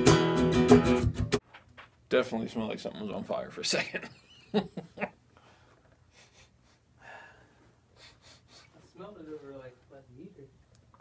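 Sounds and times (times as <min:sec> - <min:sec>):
man sniffing and breathing: 0:05.4 - 0:08.9.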